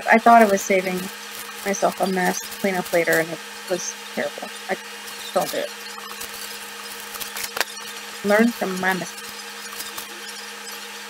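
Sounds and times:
steady low hum: 0:00.0 - 0:11.0
wax paper crinkling: 0:05.1 - 0:10.8.

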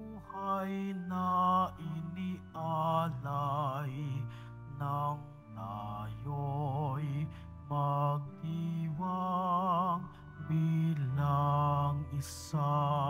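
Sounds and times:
person singing hymn with vibrato: 0:00.0 - 0:13.0.

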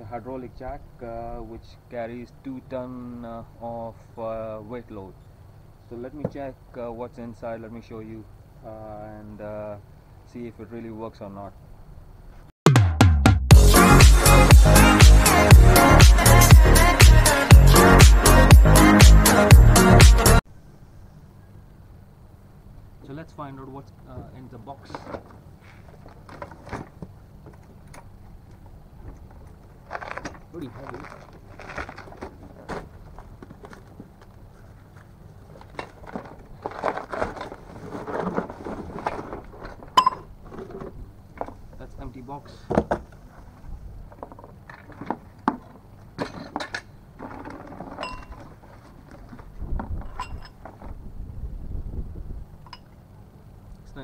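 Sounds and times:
cardboard packaging rustling: 0:29.2 - 0:40.9
cardboard box scraping and knocking: 0:35.8 - 0:41.0.

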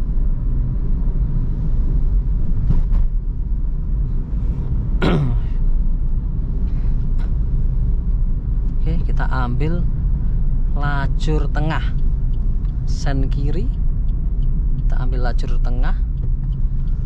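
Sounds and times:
car engine and tyres rumble: 0:00.0 - 0:17.0.

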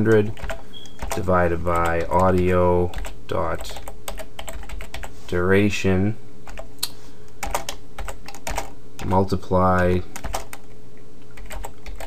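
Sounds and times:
steady low hum: 0:00.0 - 0:12.0
keyboard keystrokes: 0:00.1 - 0:01.2, 0:10.2 - 0:10.6, 0:11.4 - 0:12.0.

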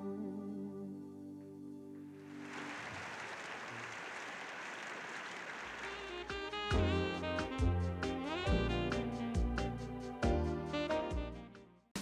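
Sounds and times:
audience applauding: 0:02.2 - 0:06.6
jazzy band music: 0:06.0 - 0:12.0.

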